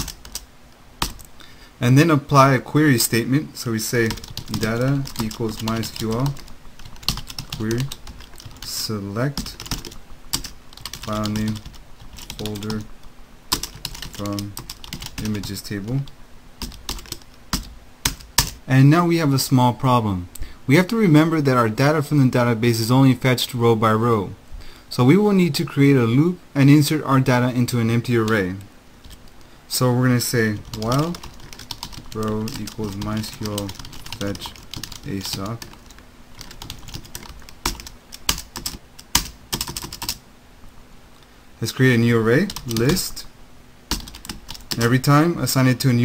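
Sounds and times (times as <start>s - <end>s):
computer keyboard keystrokes: 0.0s - 0.4s, 4.1s - 8.7s, 9.4s - 12.7s, 13.5s - 15.4s, 30.6s - 40.2s.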